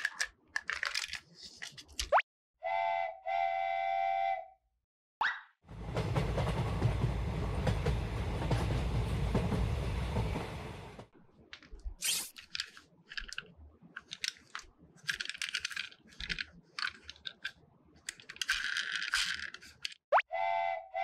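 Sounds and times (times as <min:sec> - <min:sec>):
plastic parts snapping together: 0:00.0 - 0:02.1
toy train whistle tooting: 0:02.6 - 0:04.6, 0:20.2 - 0:21.0
toy train motor and wheels running: 0:18.1 - 0:19.9.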